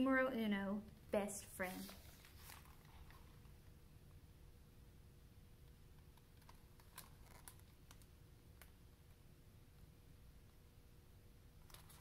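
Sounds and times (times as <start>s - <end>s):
paper rustle: 1.6s - 3.4s.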